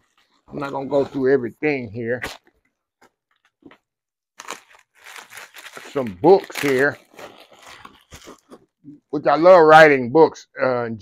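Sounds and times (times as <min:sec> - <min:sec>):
plastic packaging crinkling: 0:00.0 - 0:00.8, 0:04.4 - 0:08.8.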